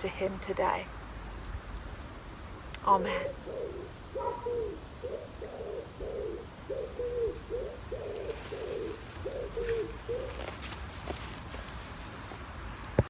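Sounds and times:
pigeon cooing: 0:03.1 - 0:10.8.

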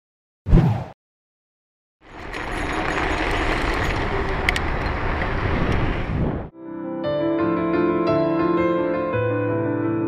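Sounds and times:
road and traffic noise: 0:02.0 - 0:06.5.

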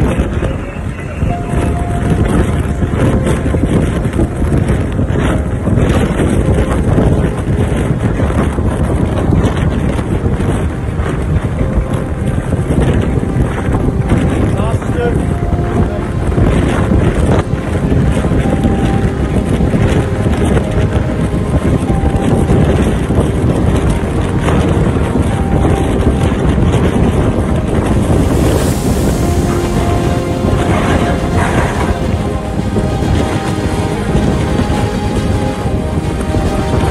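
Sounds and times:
wind blasting across microphone: 0:00.0 - 0:36.9.

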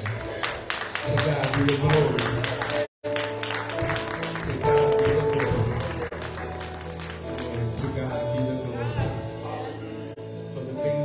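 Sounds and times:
hand clapping: 0:00.0 - 0:08.5
church music with held chords: 0:00.0 - 0:11.0.

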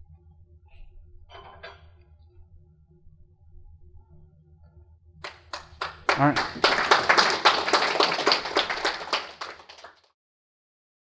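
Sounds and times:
audience applause: 0:05.2 - 0:10.1.

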